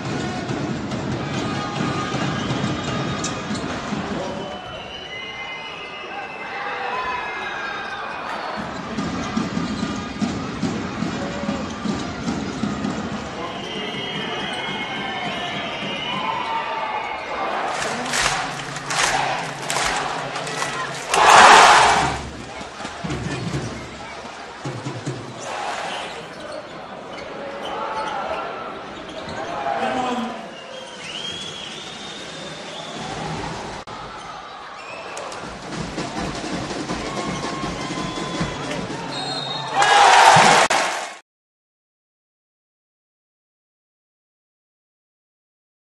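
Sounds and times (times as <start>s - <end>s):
arena crowd noise: 0.0s - 41.2s.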